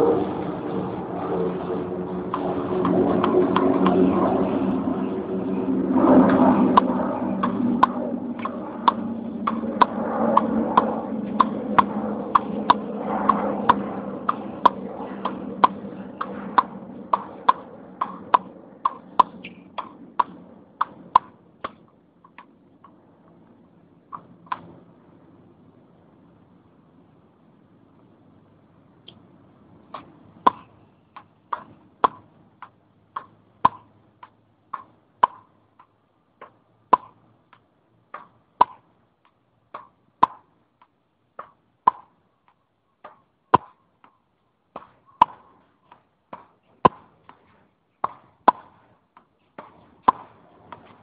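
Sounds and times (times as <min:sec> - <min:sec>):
steady low hum: 0:00.0 - 0:51.0
tennis ball hitting racquet and wall: 0:06.7 - 0:23.0, 0:24.1 - 0:24.8, 0:29.9 - 0:51.0.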